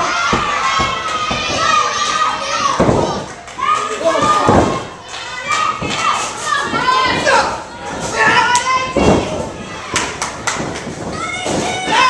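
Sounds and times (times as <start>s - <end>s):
spectators shouting: 0.0s - 10.2s
wrestling ring thuds: 2.6s - 3.3s, 4.2s - 4.9s, 8.2s - 12.0s.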